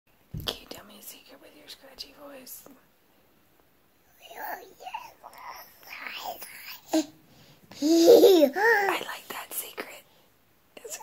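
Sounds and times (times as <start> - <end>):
soft whispering: 0.4 - 2.9, 4.1 - 7.0, 8.7 - 10.2, 10.8 - 11.0.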